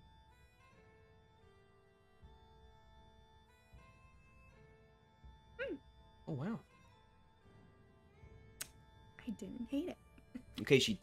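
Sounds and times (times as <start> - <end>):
faint background music: 0.0 - 11.0
woman humming mm: 5.6 - 5.9.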